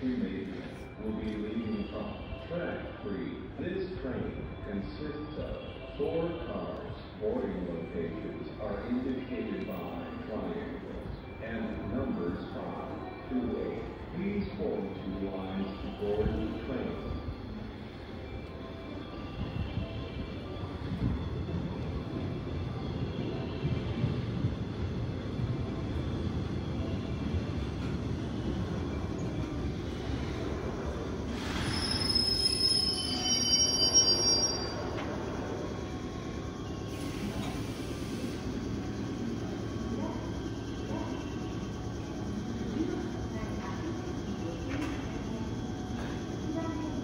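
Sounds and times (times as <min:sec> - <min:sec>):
high whistling brake squeal: 0:31.3 - 0:35.4.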